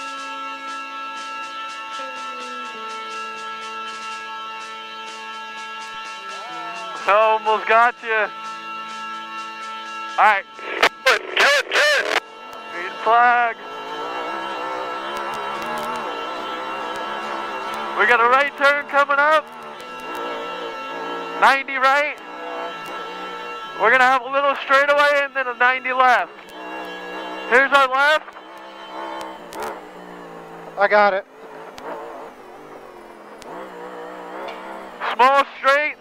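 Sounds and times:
race car engine accelerating: 0:03.1 - 0:36.0.

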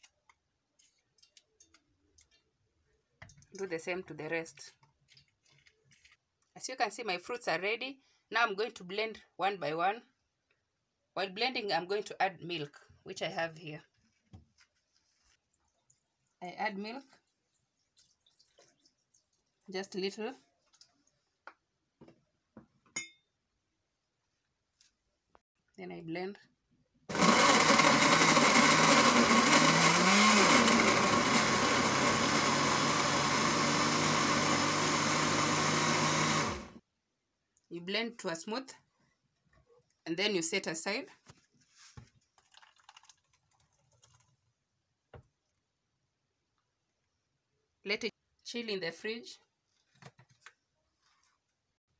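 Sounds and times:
blender running: 0:27.1 - 0:36.8.

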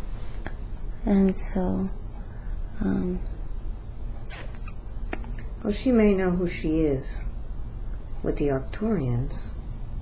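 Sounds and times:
low steady hum: 0:00.0 - 0:10.0
woman saying um: 0:01.0 - 0:02.0, 0:02.8 - 0:03.3.

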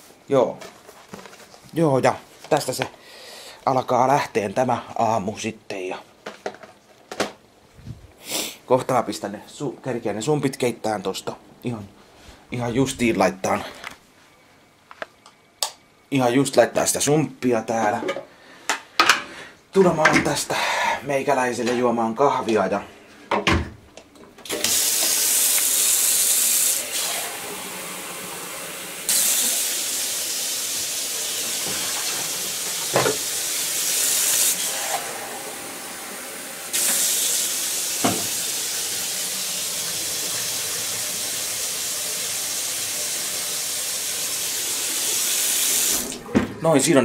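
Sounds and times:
tap running water into carafe: 0:31.4 - 0:33.5, 0:36.7 - 0:41.4.

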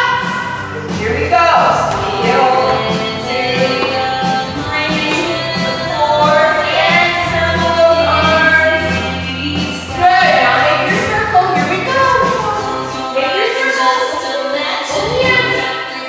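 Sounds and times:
song with singing: 0:00.0 - 0:16.0.

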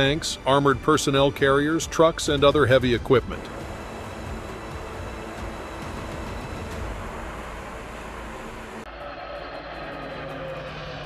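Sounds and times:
armoured vehicle engine hum: 0:00.0 - 0:11.0
hovercraft roaring over water: 0:01.9 - 0:11.0.

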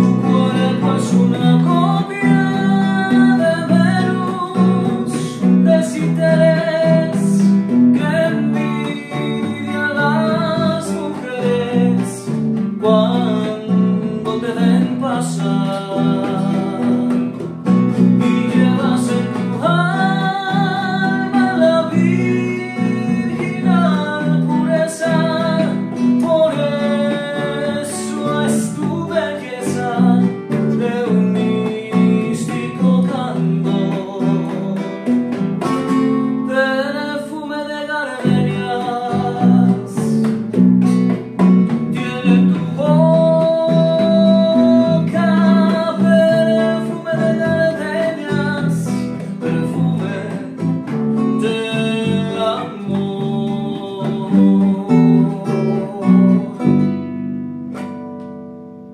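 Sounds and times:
electric bass: 0:00.0 - 0:36.2
man singing: 0:00.0 - 0:57.1
plucked acoustic guitars: 0:00.0 - 0:58.9.

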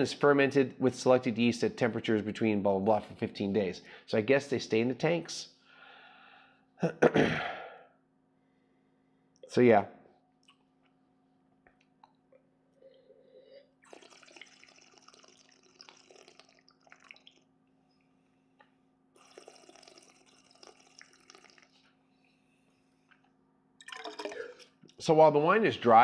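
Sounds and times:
faint airy slurping of wine: 0:12.8 - 0:17.3, 0:19.2 - 0:22.4.

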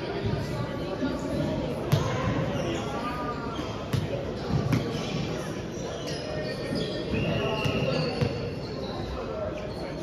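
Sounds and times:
players chattering: 0:00.0 - 0:10.0.

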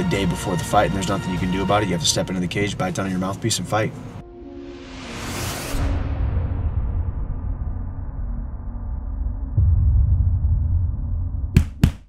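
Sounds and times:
low bass drone: 0:04.1 - 0:11.8.

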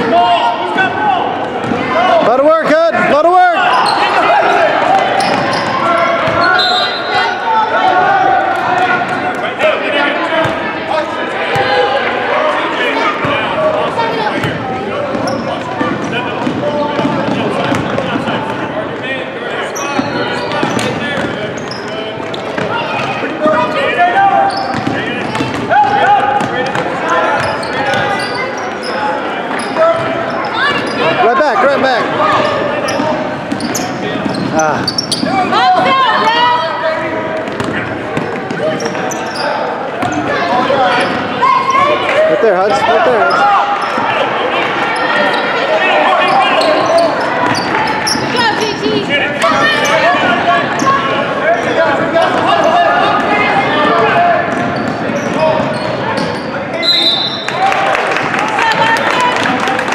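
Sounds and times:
spectators chatter and calls: 0:00.0 - 0:59.9.

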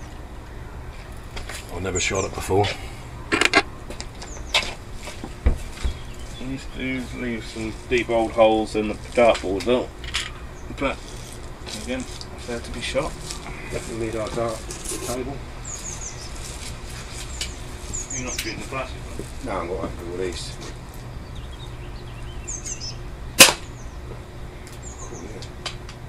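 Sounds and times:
low steady rumble: 0:00.0 - 0:26.0
bird chirping: 0:04.2 - 0:04.8, 0:05.4 - 0:07.9, 0:10.2 - 0:11.4, 0:15.6 - 0:19.0, 0:20.9 - 0:23.1, 0:23.7 - 0:25.4.

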